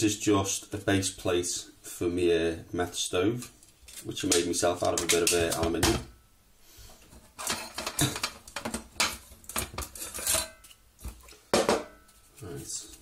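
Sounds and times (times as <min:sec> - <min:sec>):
metal cookware clinking: 0:07.4 - 0:10.7.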